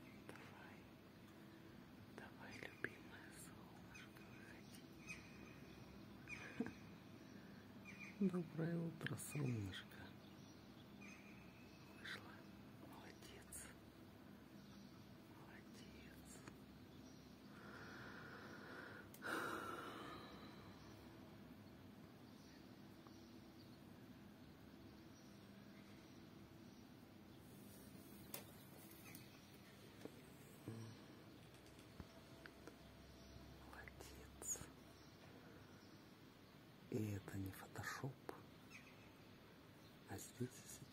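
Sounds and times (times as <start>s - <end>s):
faint whispering: 0.0s - 10.5s, 11.3s - 21.2s, 27.5s - 36.0s, 36.9s - 38.6s, 40.0s - 40.9s
person whispering faintly: 0.1s - 1.0s, 2.1s - 5.0s, 8.2s - 10.3s, 11.9s - 13.8s, 15.3s - 16.6s, 30.4s - 31.3s, 33.6s - 34.8s, 36.9s - 38.5s, 40.1s - 40.9s.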